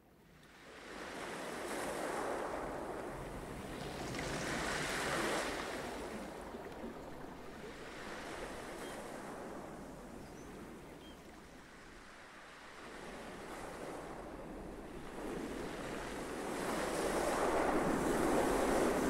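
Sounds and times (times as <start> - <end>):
ocean waves washing in: 0.6 - 10.9, 11.5 - 19.0.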